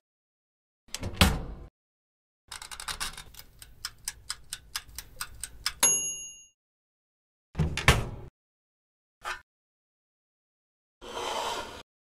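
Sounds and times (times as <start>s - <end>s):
timer knob clicks: 3.4s - 5.9s
timer ticking: 3.4s - 6.0s
bell ding: 5.8s - 6.6s.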